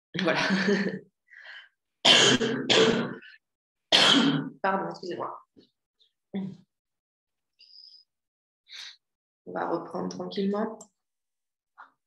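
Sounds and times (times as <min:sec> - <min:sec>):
woman clearing her throat: 0:02.1 - 0:03.2.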